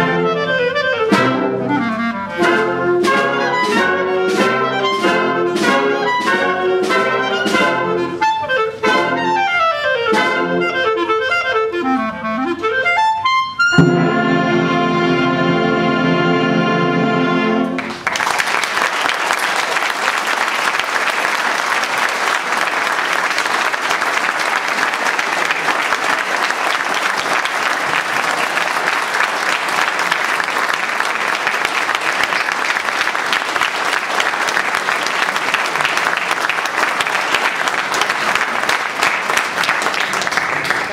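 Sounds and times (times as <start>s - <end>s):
concert band held chord: 13.7s - 17.8s
audience applause: 17.8s - 40.9s.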